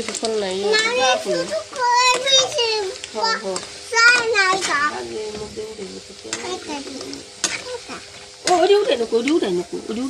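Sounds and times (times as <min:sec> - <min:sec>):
ladle clicking against pan: 0:00.0 - 0:09.6
snacks sizzling in hot oil: 0:00.0 - 0:10.0.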